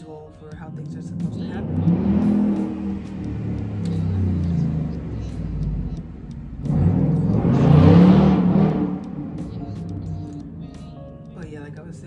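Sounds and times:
passing motor vehicle rumble: 0.5s - 12.0s.

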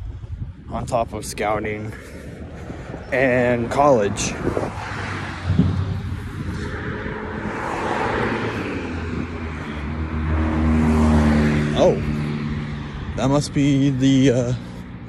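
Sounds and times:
tyre and road noise: 0.0s - 15.0s
low engine hum: 2.0s - 15.0s.

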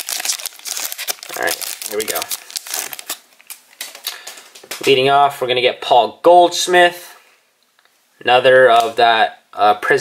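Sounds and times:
card pack wrapper crinkling: 0.0s - 5.0s.

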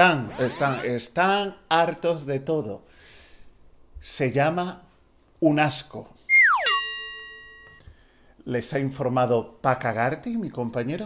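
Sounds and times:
descending whistle tone: 6.3s - 6.9s
bell-like ding: 6.6s - 7.8s.

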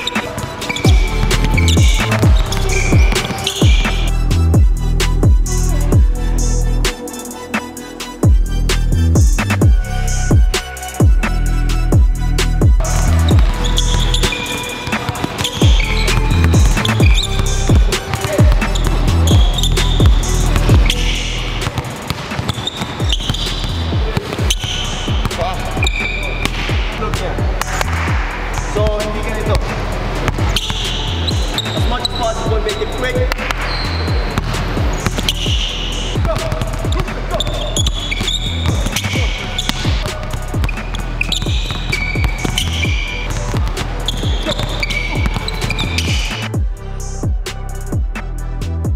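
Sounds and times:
basketballs bouncing on hardwood floor: 0.0s - 4.1s, 12.8s - 28.2s, 29.5s - 46.5s
background music with bass: 0.0s - 22.1s, 23.0s - 48.9s.

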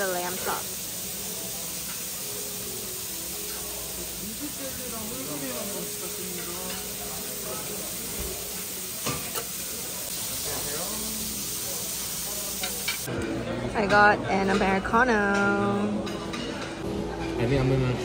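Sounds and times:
meat sizzling on a griddle: 0.0s - 13.1s.

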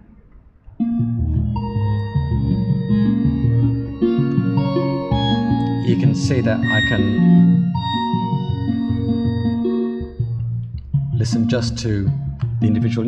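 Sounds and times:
layered electronic notes: 0.8s - 13.0s.

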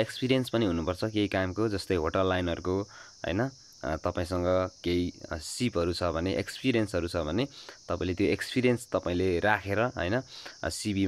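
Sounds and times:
high-pitched hiss: 0.0s - 11.0s
man narrating: 0.0s - 11.0s.

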